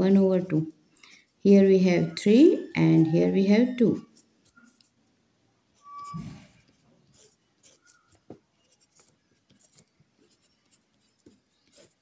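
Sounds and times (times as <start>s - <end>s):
pen scratching on paper: 3.6s - 5.0s, 5.8s - 12.0s.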